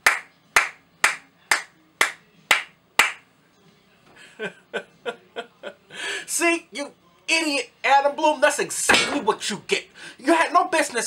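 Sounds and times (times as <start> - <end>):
person clapping hands slowly: 0.0 - 3.2.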